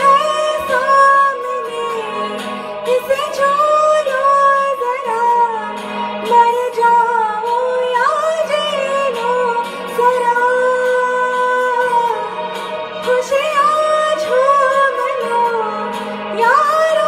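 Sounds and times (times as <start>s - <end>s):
woman singing love song: 0.0s - 17.0s.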